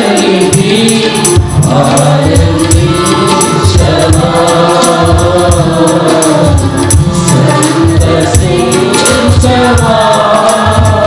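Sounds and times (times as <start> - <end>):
band accompaniment: 0.0 - 11.0
choir singing worship song: 0.0 - 11.0
regular low beat: 0.0 - 11.0.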